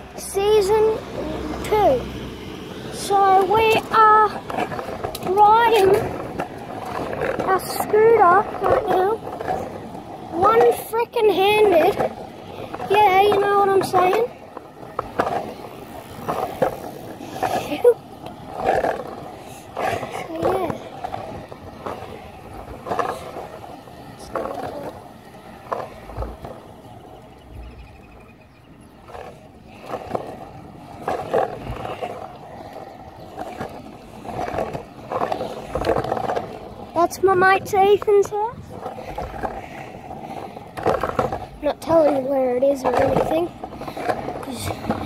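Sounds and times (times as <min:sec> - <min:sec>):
scooter wheels rolling on concrete: 0:00.0 - 0:45.0
wheels knocking over pavement joints: 0:00.0 - 0:45.0.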